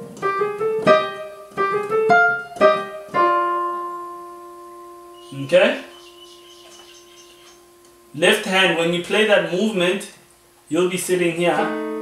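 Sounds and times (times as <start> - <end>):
digital piano chord ringing: 0.0 - 9.0, 11.5 - 12.0.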